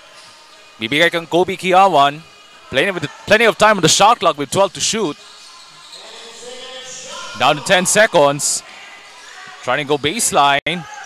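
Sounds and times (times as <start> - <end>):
murmur of voices: 2.1 - 10.1.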